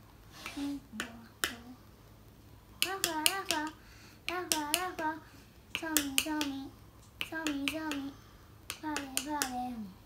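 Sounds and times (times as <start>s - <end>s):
girl singing: 0.5s - 1.9s, 2.8s - 10.0s.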